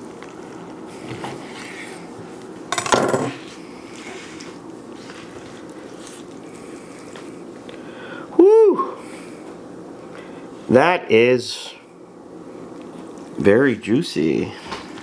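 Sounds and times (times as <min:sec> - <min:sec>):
knife clattering on countertop: 0:02.8 - 0:03.4.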